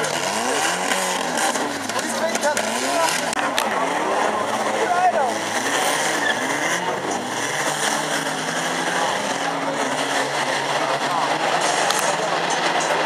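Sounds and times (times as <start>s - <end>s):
racing car engines revving: 0.0s - 13.0s
spectators talking: 0.0s - 13.0s.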